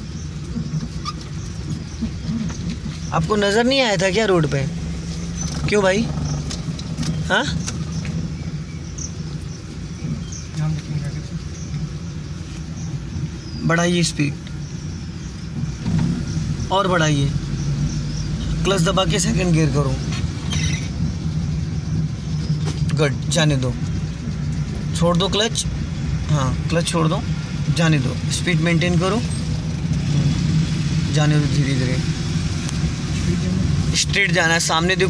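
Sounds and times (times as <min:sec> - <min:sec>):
car engine humming inside cabin: 0:00.0 - 0:35.0
gear shifting: 0:00.0 - 0:35.0.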